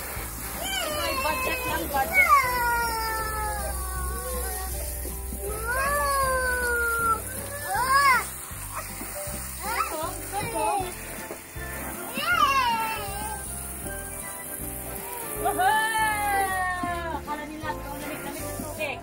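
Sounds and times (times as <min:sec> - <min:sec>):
garden hose spraying: 0:00.0 - 0:19.0
toddler squealing and babbling: 0:00.6 - 0:09.0, 0:09.6 - 0:10.9, 0:12.0 - 0:13.5, 0:14.9 - 0:17.0.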